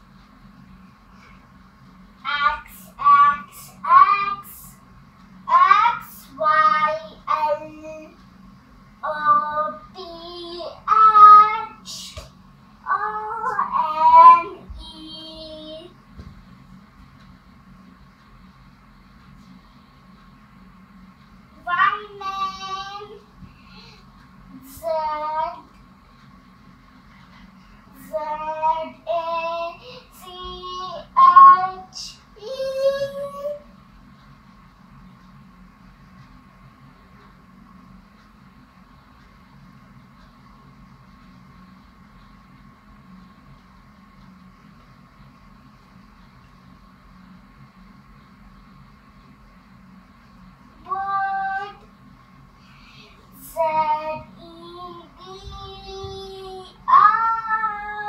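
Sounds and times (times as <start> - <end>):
girl singing: 2.3 - 4.7, 5.5 - 8.2, 9.0 - 12.3, 12.9 - 16.0, 21.6 - 23.2, 27.9 - 33.6, 50.8 - 51.8, 53.4 - 58.0.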